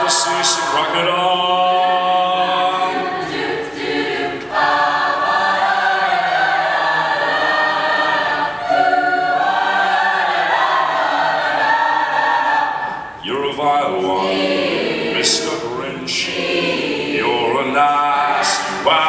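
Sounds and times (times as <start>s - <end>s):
mixed choir singing held chords: 0.0s - 19.0s.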